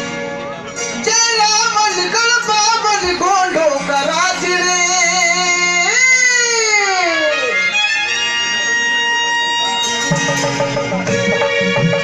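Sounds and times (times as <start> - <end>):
man singing through a microphone: 1.0 - 7.0
electronic keyboard: 9.0 - 12.0.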